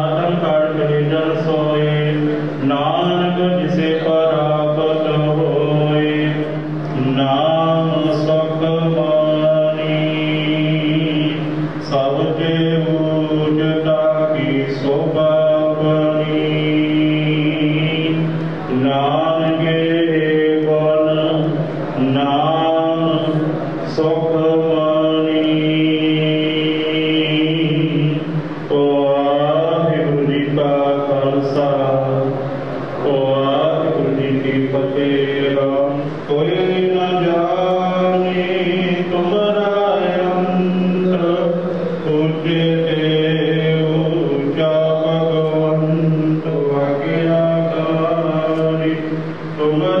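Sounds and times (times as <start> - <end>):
man chanting through a microphone: 0.0 - 50.0.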